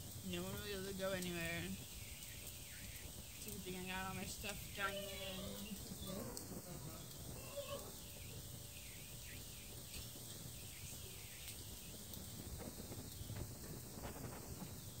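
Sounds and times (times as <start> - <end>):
heavy rain falling: 0.0 - 15.0.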